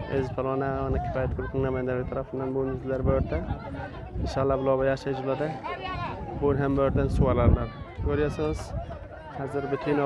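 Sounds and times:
outdoor crowd noise: 0.0 - 10.0.

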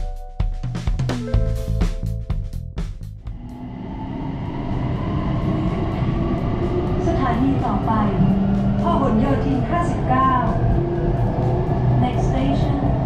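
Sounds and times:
road traffic noise: 3.5 - 13.0
voices: 7.0 - 10.8, 12.0 - 13.0.

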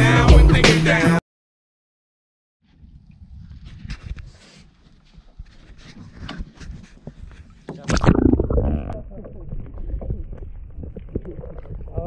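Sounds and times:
wind and water noise: 2.7 - 12.0
muffled underwater rush: 7.8 - 12.0.

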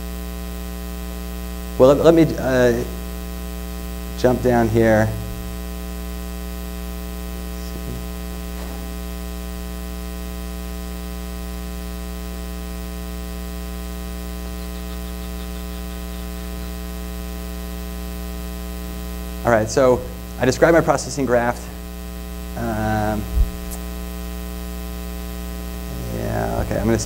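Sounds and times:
electrical mains hum: 0.0 - 27.0.

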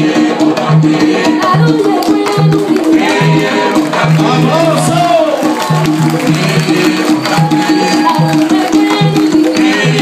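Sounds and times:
hand drums percussion music: 0.0 - 10.0.

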